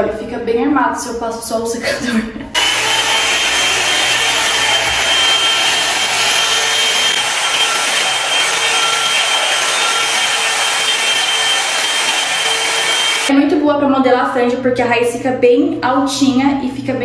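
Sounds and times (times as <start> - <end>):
hot-air brush fan blowing: 2.6 - 13.3.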